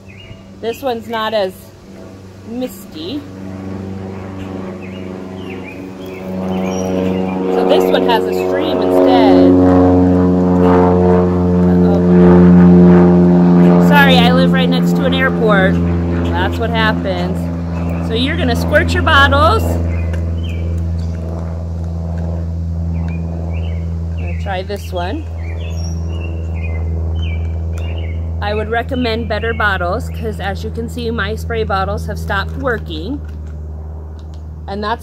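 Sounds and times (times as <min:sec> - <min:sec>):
small birds chirping: 0:00.0 - 0:01.4, 0:04.3 - 0:08.9, 0:17.6 - 0:21.5, 0:22.9 - 0:30.6
low motor drone: 0:00.0 - 0:35.0
steady low hum: 0:00.0 - 0:35.0
woman's voice: 0:00.6 - 0:01.7, 0:02.5 - 0:03.3, 0:07.5 - 0:09.6, 0:11.7 - 0:12.3, 0:13.7 - 0:19.8, 0:24.2 - 0:25.3, 0:28.4 - 0:33.2, 0:34.7 - 0:35.0.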